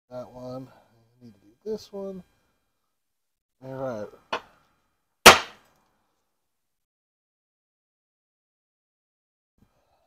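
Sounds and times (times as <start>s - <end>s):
hammer striking punch on sheet metal: 5.3s - 5.6s.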